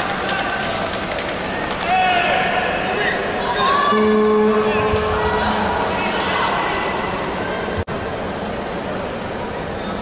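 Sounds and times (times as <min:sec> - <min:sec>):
arena hall noise: 0:00.0 - 0:10.0.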